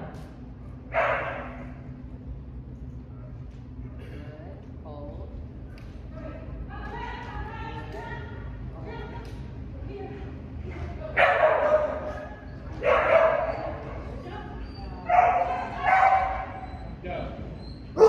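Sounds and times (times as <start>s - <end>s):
dog barking: 0.9s - 1.6s, 11.2s - 13.8s, 15.1s - 16.6s.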